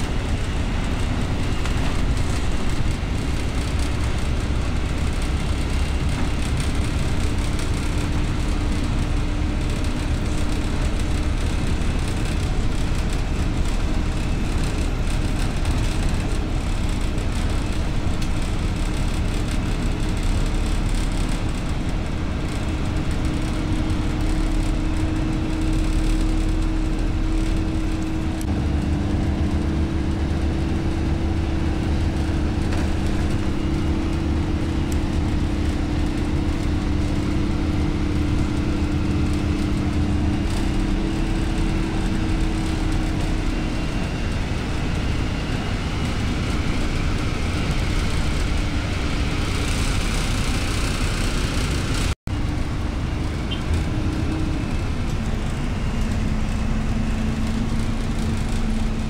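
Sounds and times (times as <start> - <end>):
road rumble: 0.0 - 59.0
vehicle engine hum: 0.0 - 59.0.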